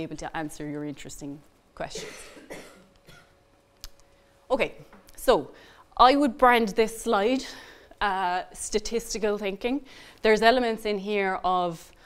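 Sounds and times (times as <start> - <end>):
person coughing: 1.9 - 3.4.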